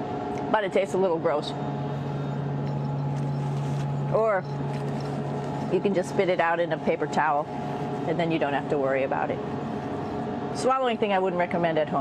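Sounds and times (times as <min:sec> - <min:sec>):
low even hum: 0:00.0 - 0:12.0
ventilation whir: 0:00.0 - 0:12.0.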